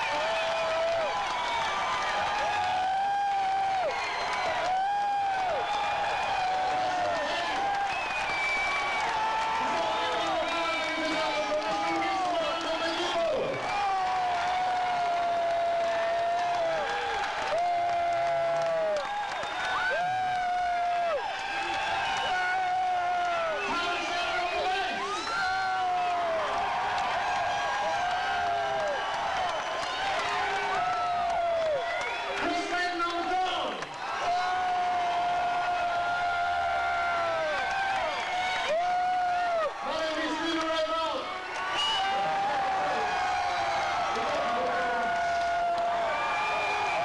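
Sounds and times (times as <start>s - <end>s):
crowd applauding and cheering: 0.0s - 47.0s.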